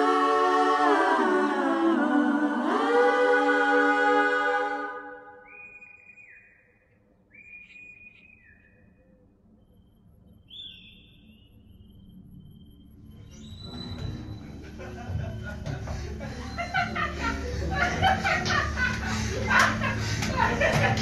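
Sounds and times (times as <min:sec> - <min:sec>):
music: 0:00.0 - 0:05.3, 0:11.2 - 0:21.0
faint high whistle-like tones: 0:04.9 - 0:17.2.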